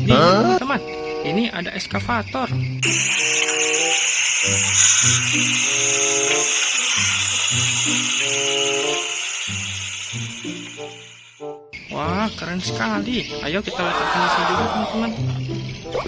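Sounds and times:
speech: 0.0 - 2.6, 11.9 - 15.2
steady hiss: 2.8 - 11.4.

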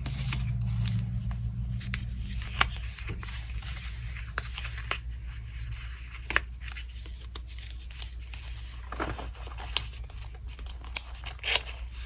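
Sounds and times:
paper and card rustling: 0.0 - 12.0.

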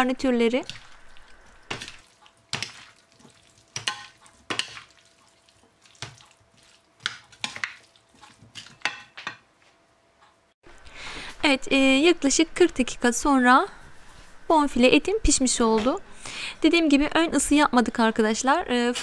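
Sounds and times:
spoon stirring salad in a bowl: 0.7 - 9.3.

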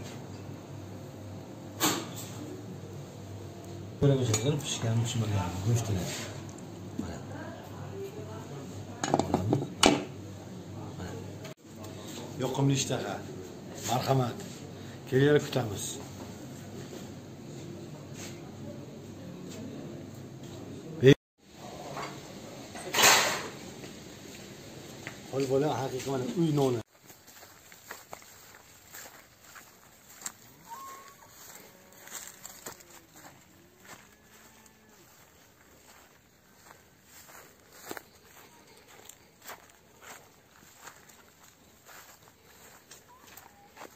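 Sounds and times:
steps crunching on dry grass: 25.4 - 43.9.

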